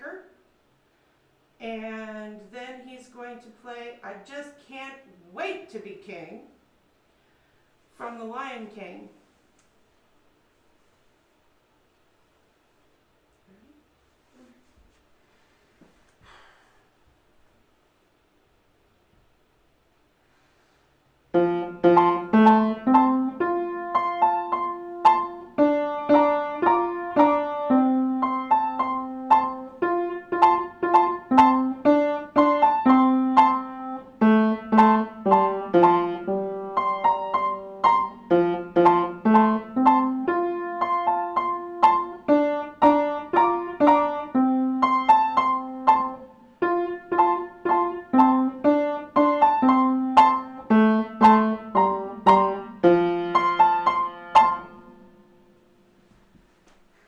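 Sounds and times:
piano melody of struck notes: 21.4 - 55.5.

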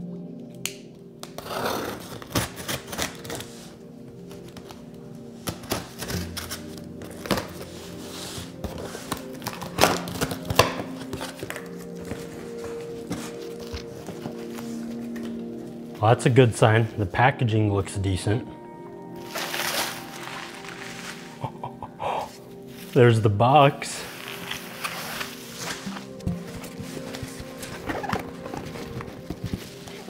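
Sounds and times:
background music: 0.0 - 30.0
knife slitting packing tape: 1.3 - 3.7, 5.4 - 7.7, 8.7 - 11.6, 19.3 - 21.2
cardboard flaps scraping and knocking: 25.6 - 30.0.

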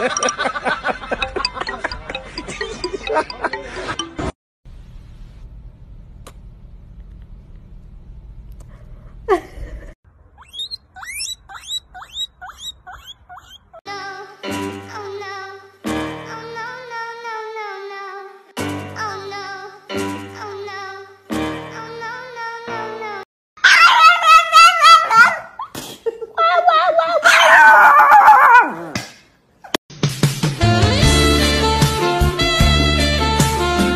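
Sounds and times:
guinea pig squeaking: 10.4 - 13.8
dog howling: 23.6 - 25.5.

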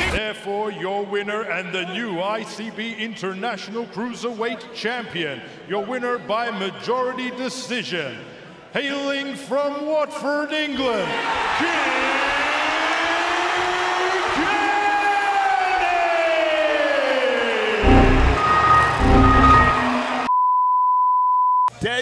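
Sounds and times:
crowd noise: 17.1 - 20.3
computer error sound: 17.8 - 20.3
ring announcer calling out: 17.8 - 20.3
ringing tone: 17.8 - 20.3
steady high beep: 17.8 - 21.7.

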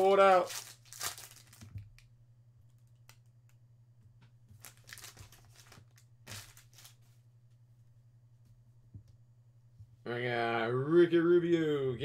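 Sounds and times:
foil wrapper crinkling: 0.0 - 2.1, 4.6 - 7.0
low steady hum: 0.0 - 12.0
cards being handled: 4.5 - 7.2.

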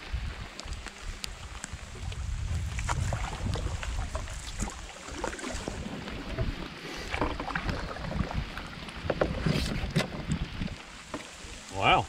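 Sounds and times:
paddle splashes and drips: 0.0 - 12.0
paddle knocking against hull: 2.8 - 11.4.

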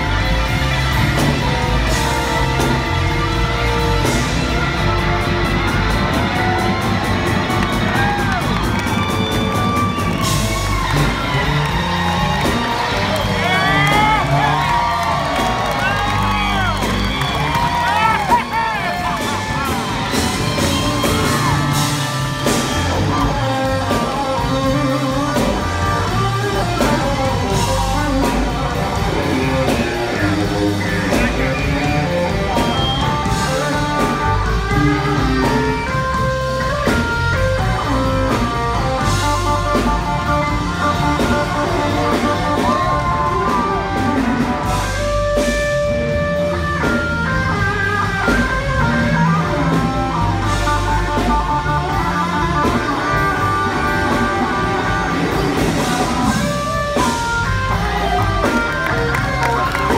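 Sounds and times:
bass guitar: 0.0 - 59.9
drums: 0.0 - 59.9
keyboard: 0.0 - 59.9
audience shouting: 1.9 - 36.2.

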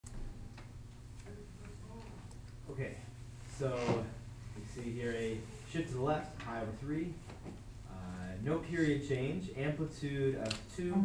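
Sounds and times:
low hum of room noise: 0.0 - 11.0.

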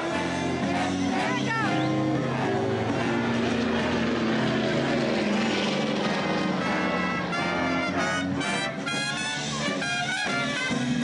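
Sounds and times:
big band swing music: 0.0 - 11.0.

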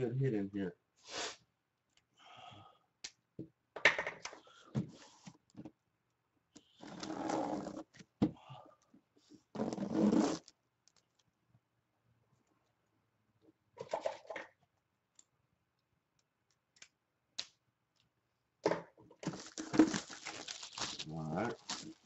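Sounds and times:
cardboard scraping and tearing: 19.2 - 22.0
person mumbling: 21.0 - 21.6.

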